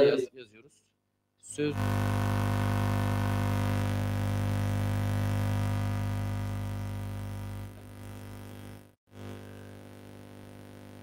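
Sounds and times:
electrical buzz-hum: 1.6s - 11.0s.

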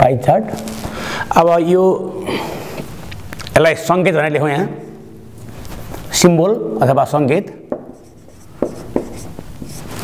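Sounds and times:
writing tool tapping and scratching: 7.7s - 9.9s.

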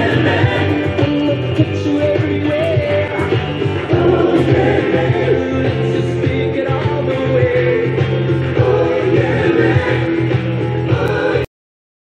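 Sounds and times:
song with singing over a beat: 0.0s - 11.5s.

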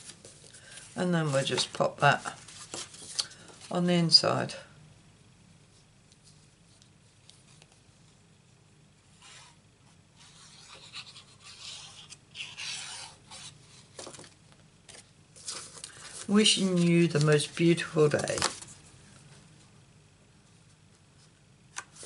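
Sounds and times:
paper and card rubbing: 10.2s - 13.9s.

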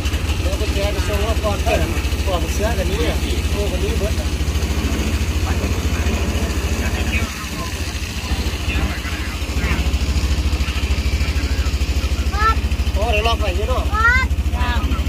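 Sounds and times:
boat engine running: 0.0s - 15.0s
faint voices talking: 0.0s - 15.0s.

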